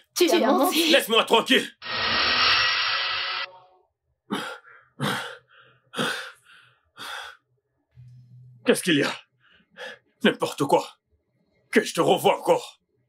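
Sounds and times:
loud rushing noise effect: 1.8s - 3.5s
man breathing heavily: 4.3s - 7.4s.

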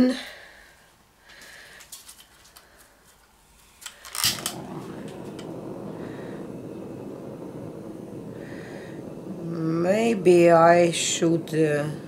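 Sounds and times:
torch flame hissing: 3.6s - 12.0s
gas torch igniter clicking: 3.8s - 12.0s.

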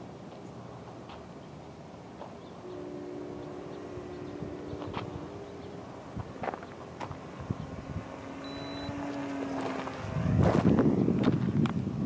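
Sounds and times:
wind buffeting microphone: 2.5s - 12.0s
model airplane motor droning: 2.6s - 11.1s.

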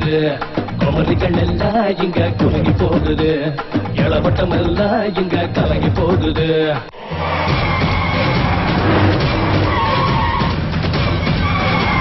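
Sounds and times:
background music: 0.0s - 12.0s
speeding vehicles: 6.9s - 12.0s
tyres screeching: 6.9s - 12.0s.

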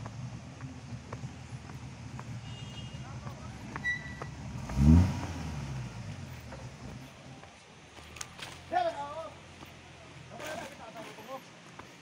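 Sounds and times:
truck engine rumbling and revving: 0.0s - 10.5s.

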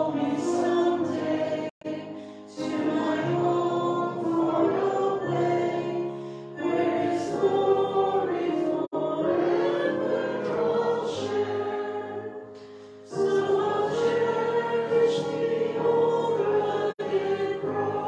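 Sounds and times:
choir singing a hymn: 0.0s - 18.0s.

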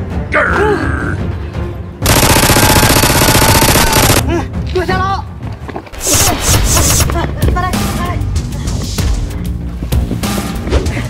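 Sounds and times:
background music: 0.0s - 11.0s
rapid automatic gunfire: 2.0s - 4.2s.

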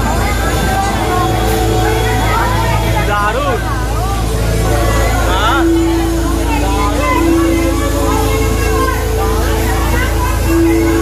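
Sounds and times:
voices talking over each other: 0.0s - 11.0s.

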